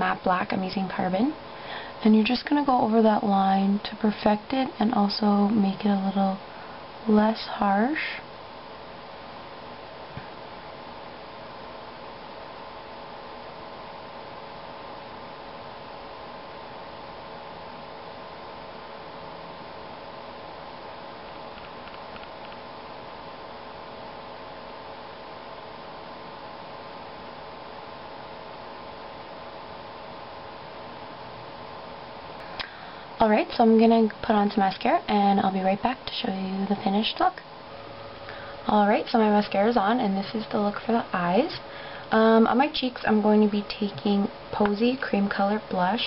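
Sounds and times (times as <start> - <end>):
faint tonal hum: 0.0 - 46.0
steady background hiss: 0.0 - 46.0.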